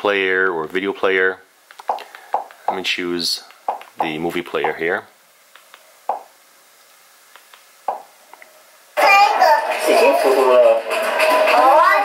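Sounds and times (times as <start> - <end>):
child and people talking on tv: 9.0 - 12.0.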